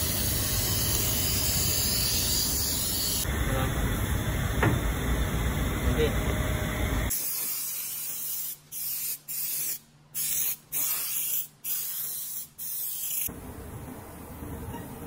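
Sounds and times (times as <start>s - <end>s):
spray gun hissing: 0.0s - 3.3s, 7.1s - 13.3s
rough workshop noise: 0.0s - 8.7s.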